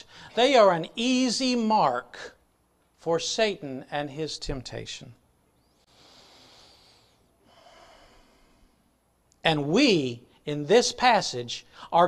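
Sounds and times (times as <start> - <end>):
man breathing into microphone: 5.7 - 8.9.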